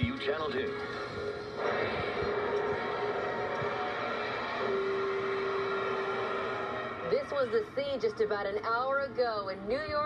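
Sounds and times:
crowd cheering: 1.6s - 7.2s.

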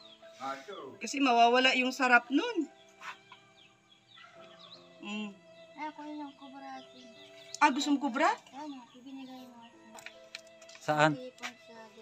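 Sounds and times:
faint bird chirps: 0.0s - 10.2s.

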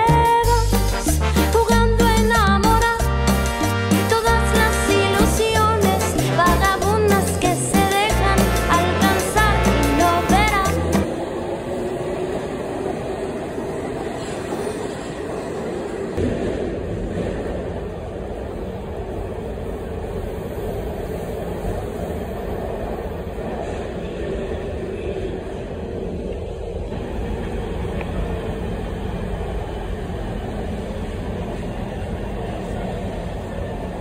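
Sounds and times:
subway train wheels rumbling on rail: 8.7s - 34.0s.

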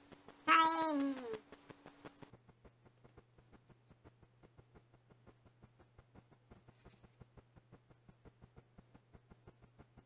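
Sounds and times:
cat meowing: 0.5s - 1.2s.

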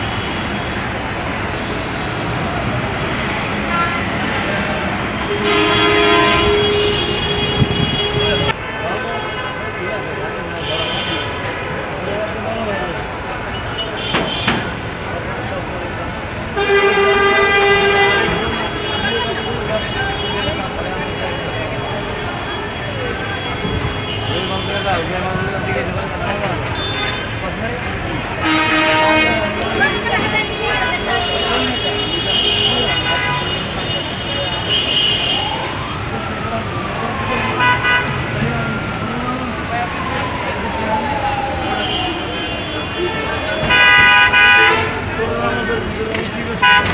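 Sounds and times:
crowd chatter: 0.0s - 46.9s
people's voices: 0.0s - 46.9s
street traffic: 0.0s - 46.9s
vehicle horn: 3.7s - 4.2s, 5.2s - 8.6s, 16.6s - 20.7s, 28.4s - 35.5s, 41.8s - 45.0s, 46.6s - 46.9s
sharp knocks: 14.1s - 14.8s.

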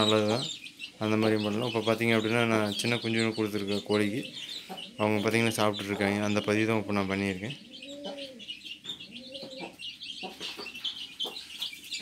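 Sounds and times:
chicks peeping: 0.0s - 12.0s
hen clucking: 0.0s - 12.0s.

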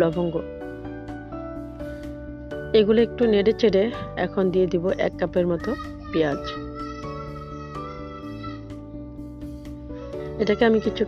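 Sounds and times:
woman speaking: 0.0s - 0.5s, 2.8s - 6.6s, 10.4s - 11.0s
background music held tones: 0.0s - 11.0s.

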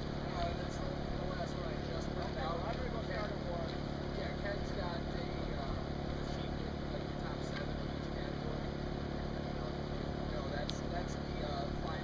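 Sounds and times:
low engine hum: 0.0s - 12.0s
people talking: 0.2s - 12.0s.

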